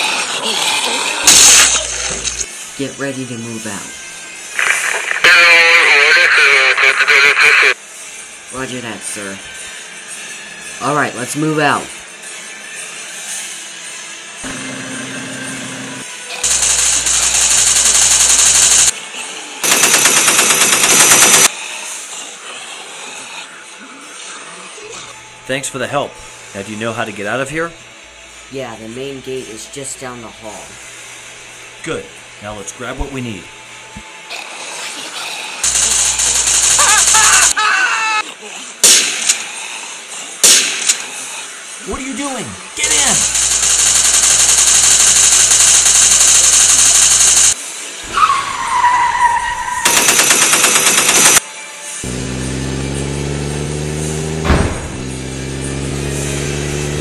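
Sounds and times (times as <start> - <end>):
quiet background music: 0.1 - 36.7, 47.6 - 57.0
single sharp gunshots: 1.3 - 2.3, 38.8 - 39.4, 40.4 - 41.1, 54.4 - 55.0
rapid automatic gunfire: 16.4 - 19.0, 19.6 - 21.6, 35.6 - 37.6, 42.8 - 47.6, 49.8 - 51.5
high voice crying out: 36.8 - 38.3.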